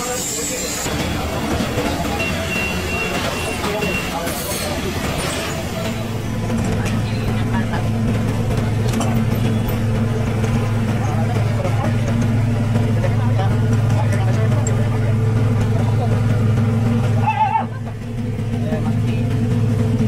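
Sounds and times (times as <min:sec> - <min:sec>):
faint voices: 0:00.0 - 0:19.4
boat engine droning: 0:00.0 - 0:20.0.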